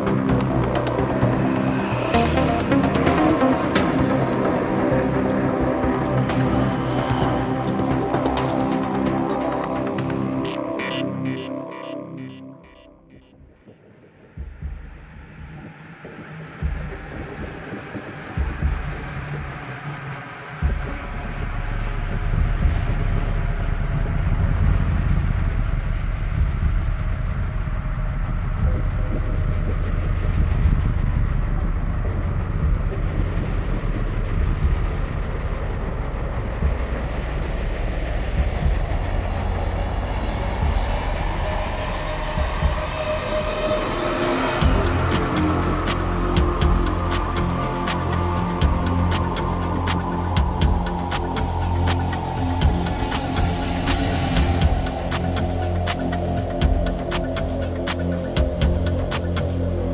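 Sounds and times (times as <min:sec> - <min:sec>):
rising synth sweep: 0:00.0 - 0:13.3, 0:15.7 - 0:59.9
deep repeating bass pulse: 0:00.0 - 0:19.8, 0:20.6 - 0:59.9
downtempo electronic music: 0:00.0 - 0:59.9.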